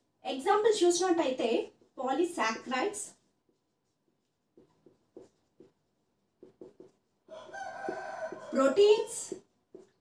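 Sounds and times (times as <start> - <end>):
marker pen writing on whiteboard: 0.9 - 10.0.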